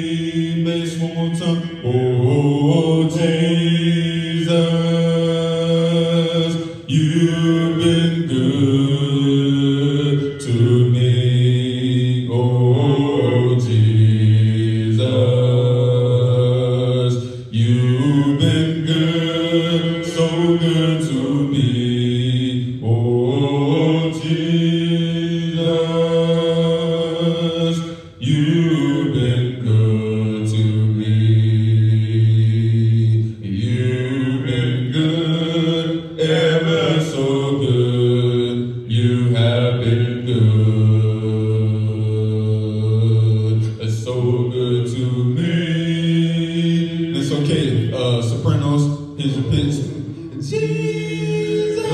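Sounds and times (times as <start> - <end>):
voices singing a cappella hymn: 0.0 - 51.9.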